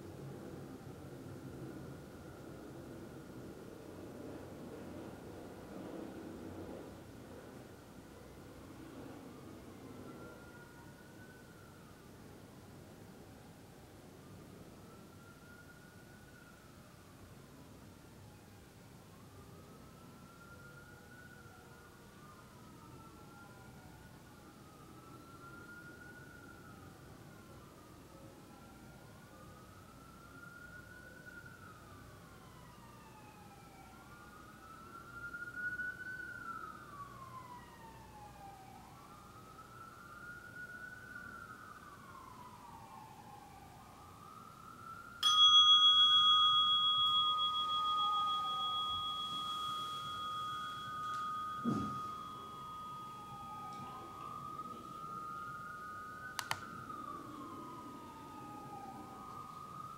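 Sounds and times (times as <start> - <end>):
faint siren wailing: 0.0 - 45.2, 45.8 - 59.9
meditation bell ringing: 45.2 - 56.3.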